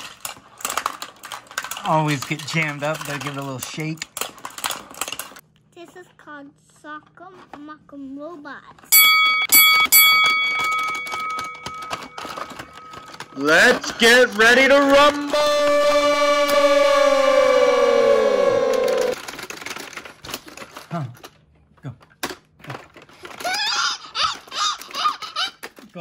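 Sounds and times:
plastic toy clicking and clacking: 0.0s - 5.4s, 10.1s - 15.4s, 19.1s - 26.0s
young child squealing: 23.4s - 25.5s.

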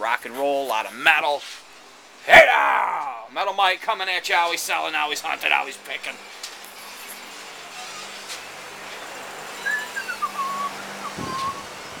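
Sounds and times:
whistled notes stepping down: 9.6s - 11.9s.

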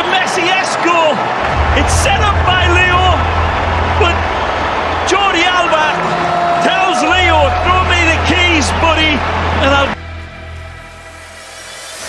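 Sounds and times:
stadium crowd noise: 0.0s - 12.0s
low hum: 1.5s - 6.6s.

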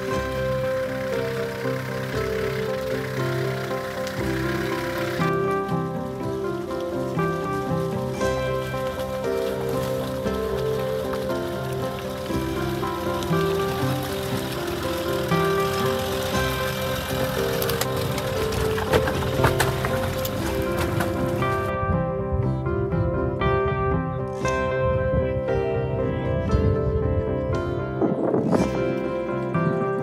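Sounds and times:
instrumental music with held notes: 0.0s - 30.0s.

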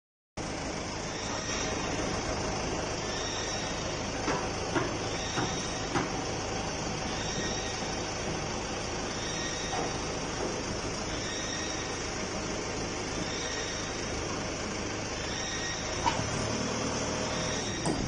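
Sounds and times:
forklift engine running: 0.4s - 18.0s.

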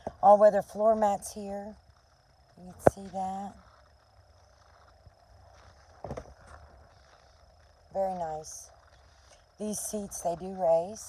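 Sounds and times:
low hum inside truck cab: 0.0s - 11.0s.

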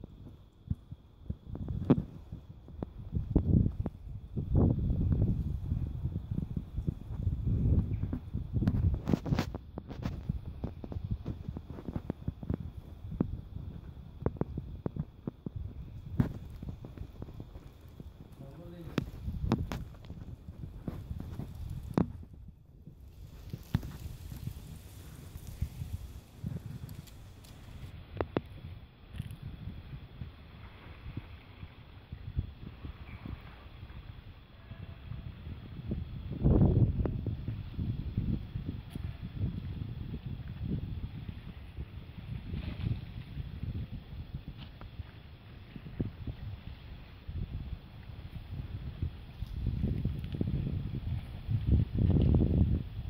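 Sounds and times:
footsteps on paving: 8.1s - 22.4s, 23.1s - 27.9s.

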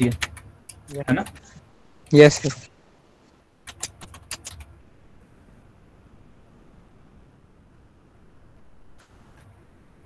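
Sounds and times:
computer keyboard typing: 0.0s - 2.7s, 3.6s - 4.7s.

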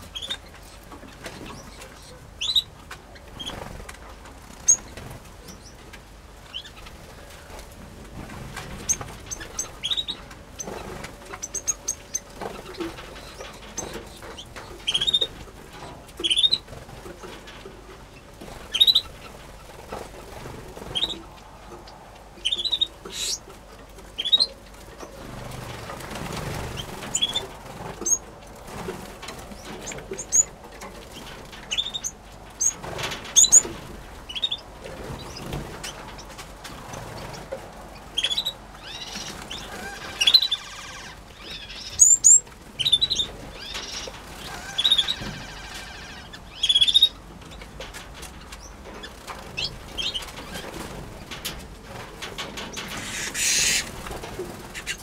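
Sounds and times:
finches chirping: 21.8s - 23.4s, 24.2s - 24.5s.

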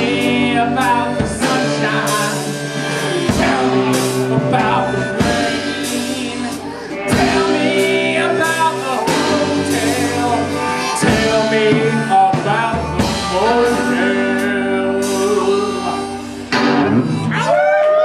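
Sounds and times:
loud guitar chord: 0.0s - 17.4s
live band playing: 0.0s - 18.0s.

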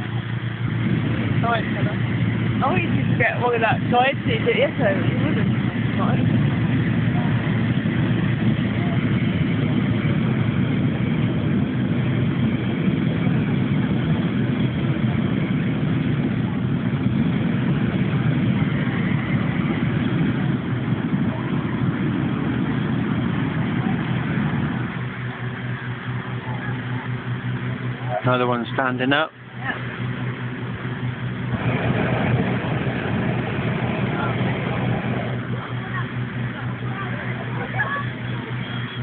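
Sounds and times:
inflator fan petrol engine running: 0.0s - 39.0s.

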